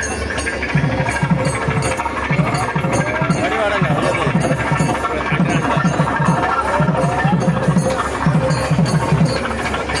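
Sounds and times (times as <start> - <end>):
hubbub of large crowd: 0.0 - 10.0
quick uneven drumbeats: 0.3 - 10.0.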